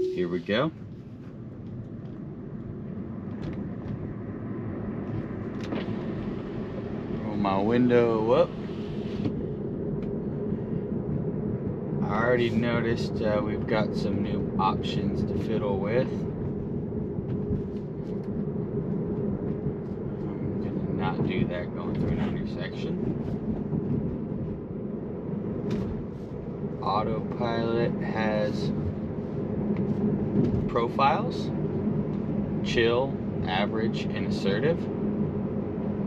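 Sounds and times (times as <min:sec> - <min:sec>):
tyre and road noise in car: 0:00.2 - 0:36.0.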